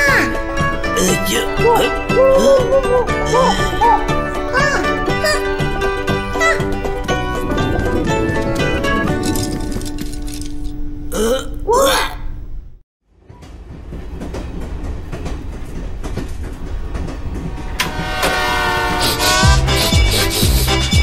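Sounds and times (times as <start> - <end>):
light cartoon music: 0.0 - 11.7, 18.8 - 21.0
title music: 2.0 - 11.1.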